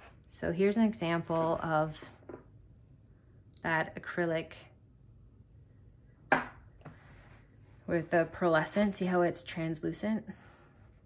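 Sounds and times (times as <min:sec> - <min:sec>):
sketchbook tapping on table: 0:06.3 - 0:06.6.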